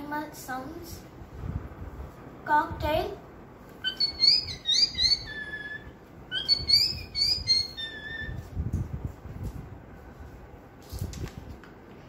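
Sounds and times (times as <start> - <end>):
girl whistling bird call imitation: 3.8 - 8.4.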